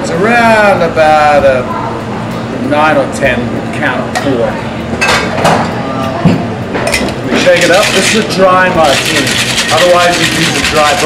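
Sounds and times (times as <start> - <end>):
ice clinking in cocktail shaker: 7.5 - 11.0.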